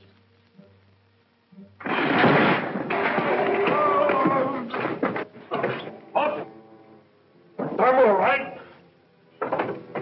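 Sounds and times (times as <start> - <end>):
loud rough crashing noise: 1.8 - 5.3.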